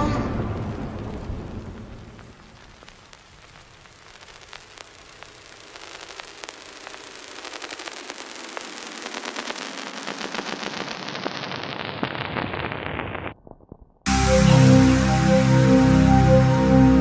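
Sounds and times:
electronic crackling clicks and hiss: 0:00.5 - 0:15.7.

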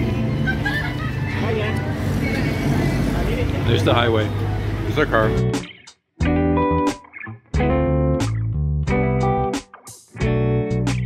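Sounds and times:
low engine hum: 0:00.0 - 0:05.3
roadside traffic noise: 0:00.0 - 0:05.8
faint voices: 0:01.2 - 0:05.2.

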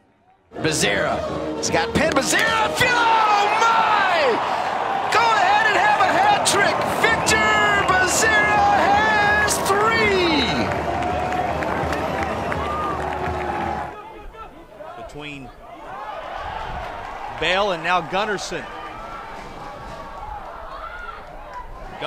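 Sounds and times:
stadium crowd cheering: 0:00.5 - 0:22.0
excited voices: 0:00.6 - 0:22.0.

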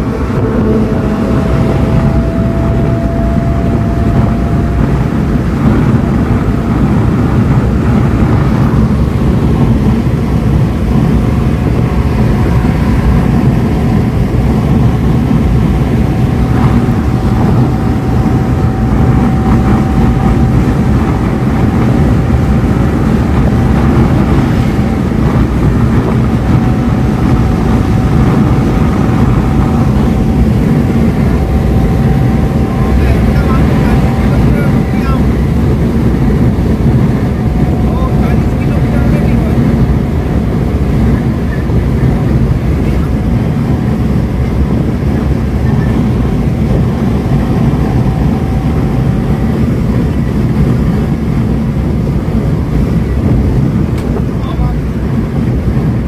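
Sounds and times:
engine drone: 0:00.0 - 0:56.0
thin steady whine: 0:00.0 - 0:56.0
wind noise: 0:00.0 - 0:56.0.

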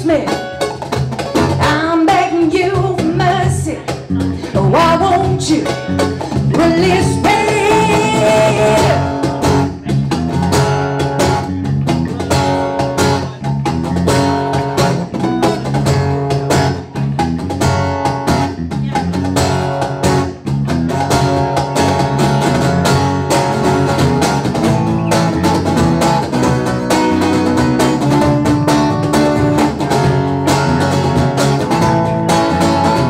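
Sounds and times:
cajon beat: 0:00.0 - 0:33.0
electric bass line: 0:00.0 - 0:33.0
strummed acoustic guitar: 0:00.0 - 0:33.0.

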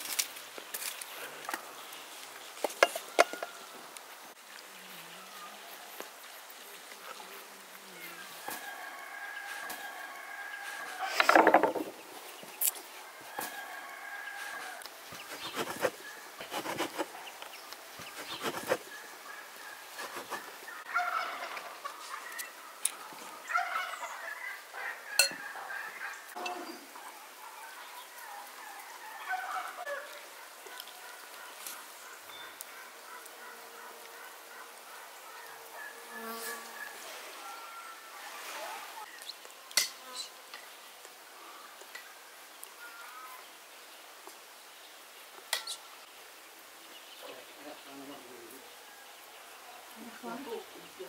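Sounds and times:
fowl calling: 0:18.0 - 0:39.3.

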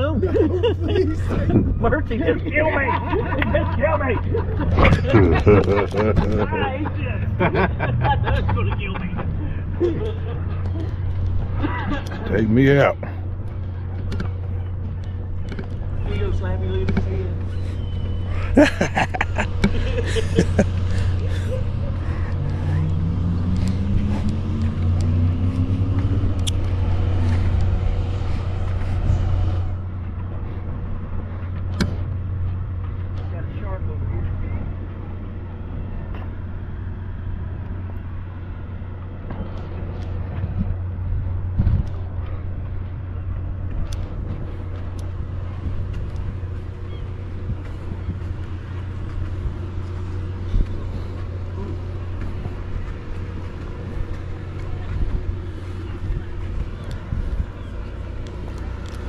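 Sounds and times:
low engine hum: 0:00.0 - 0:59.0
engine speeding up: 0:00.9 - 0:59.0.

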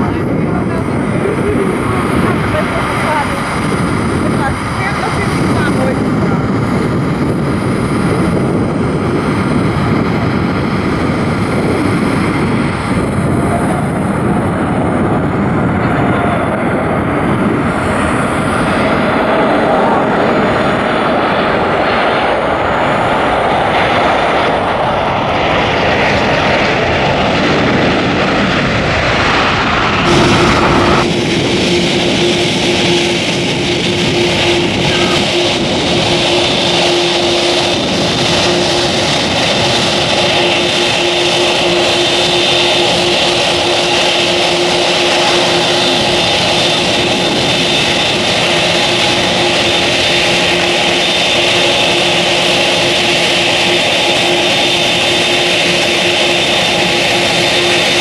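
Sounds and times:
faint jet whine: 0:00.0 - 0:58.0
jet engine noise: 0:00.0 - 0:58.0.

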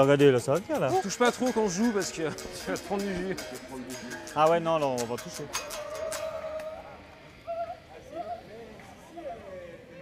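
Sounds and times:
faint unamplified guitar strings: 0:00.0 - 0:07.3.

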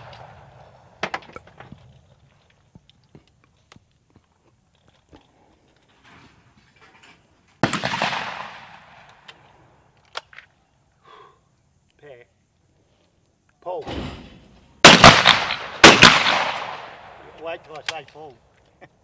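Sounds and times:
loud shotgun shot echoing: 0:07.6 - 0:09.0, 0:14.8 - 0:17.2.

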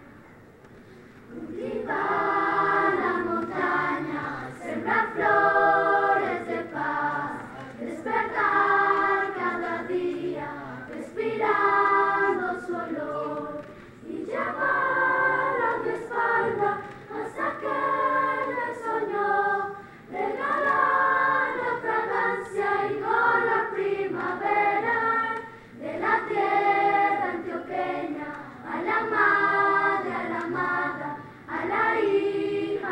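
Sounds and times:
children's choir singing: 0:01.3 - 0:32.9.

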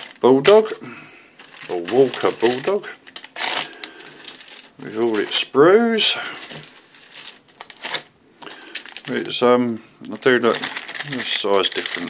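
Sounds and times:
plastic bags crinkling: 0:00.0 - 0:00.8, 0:01.4 - 0:12.0.

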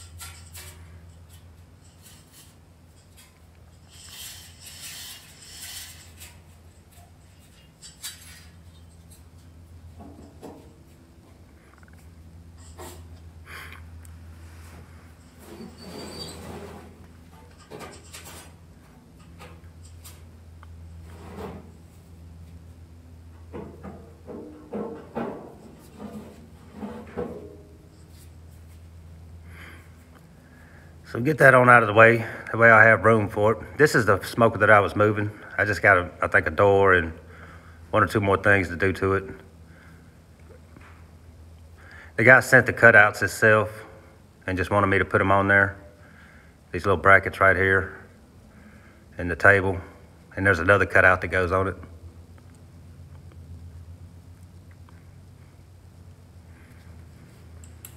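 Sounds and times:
chain hoist rattling and clinking: 0:00.0 - 0:10.7, 0:15.2 - 0:18.6
steady low hum: 0:00.0 - 0:57.9.

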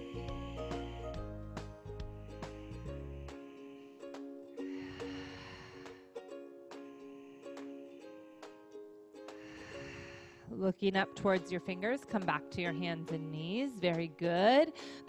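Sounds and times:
plucked string background music: 0:00.0 - 0:15.0.

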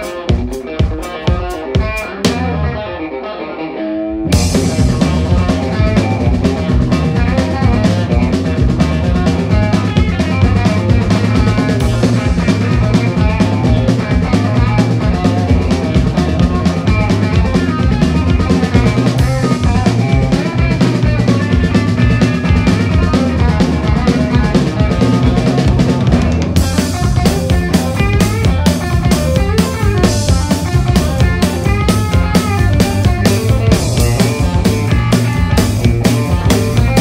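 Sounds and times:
drum kit: 0:00.0 - 0:03.2, 0:04.1 - 0:37.0
blues-rock band playing: 0:00.0 - 0:37.0.

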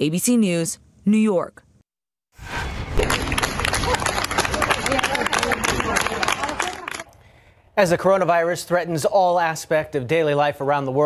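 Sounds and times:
people applauding: 0:02.9 - 0:07.2.

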